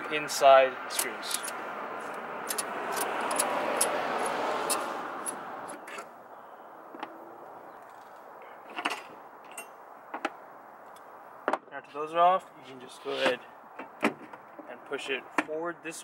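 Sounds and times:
car passing: 0:00.0 - 0:08.6
screwdriver and screws clicking: 0:02.4 - 0:05.4.

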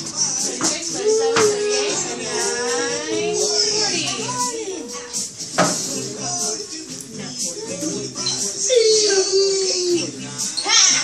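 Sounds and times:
children talking and calling: 0:00.0 - 0:11.0.

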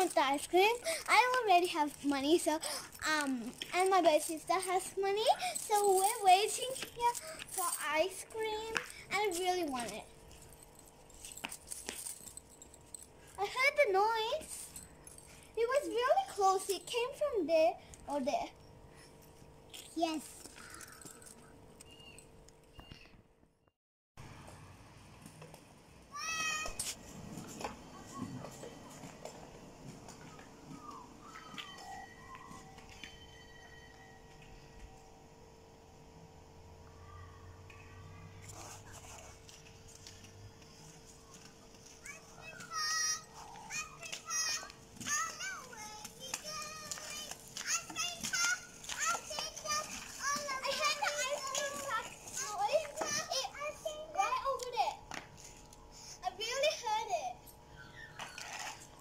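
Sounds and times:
children shrieking and squealing: 0:42.0 - 0:53.9.

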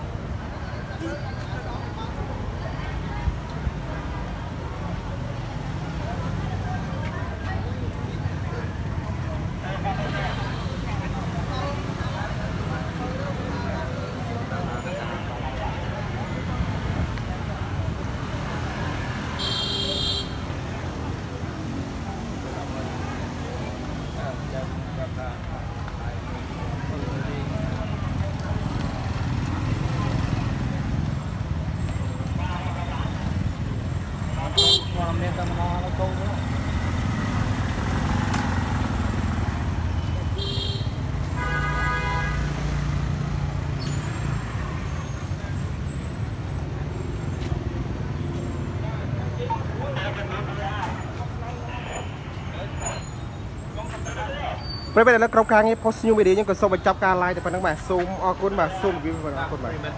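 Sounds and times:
crowd noise: 0:00.0 - 0:59.9
street traffic: 0:00.0 - 0:59.9
vehicle horn: 0:19.4 - 0:20.4, 0:34.6 - 0:35.0, 0:40.4 - 0:42.6.

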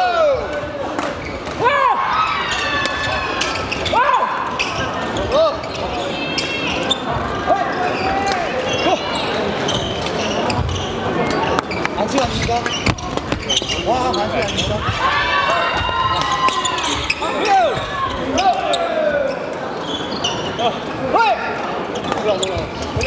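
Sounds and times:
shoes squeaking on wooden floor: 0:02.4 - 0:21.0, 0:21.8 - 0:23.0.

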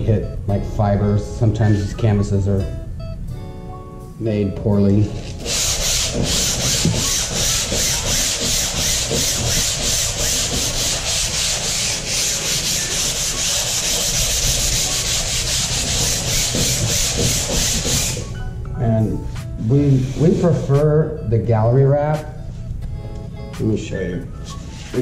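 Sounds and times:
sandpaper rubbing on canvas: 0:05.2 - 0:18.2, 0:19.8 - 0:20.6.

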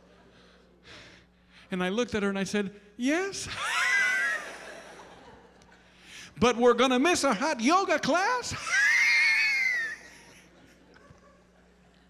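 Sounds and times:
man's falsetto wail: 0:03.5 - 0:04.5, 0:08.6 - 0:10.2.

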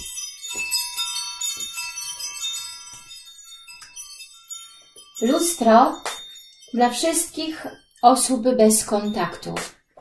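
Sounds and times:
bell-like chimes: 0:00.0 - 0:09.9.

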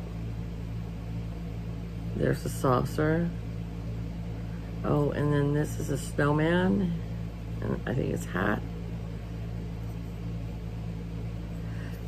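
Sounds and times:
air conditioner humming: 0:00.0 - 0:12.0.

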